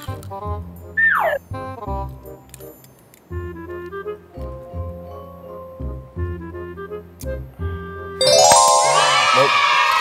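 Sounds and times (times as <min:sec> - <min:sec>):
downward-sliding sound effect: 0:08.2 - 0:10.0.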